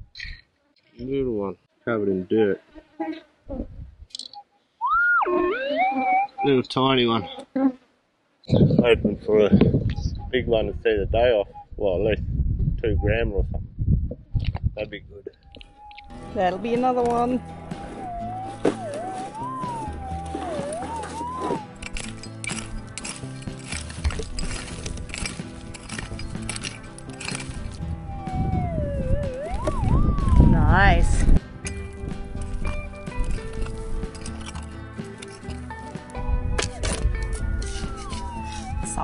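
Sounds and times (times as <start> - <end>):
metal detector signal tone: 4.2 - 7.4, 15.5 - 22.7, 28.0 - 31.1, 36.8 - 39.0
background music with held chords: 15.8 - 30.4, 31.4 - 39.0.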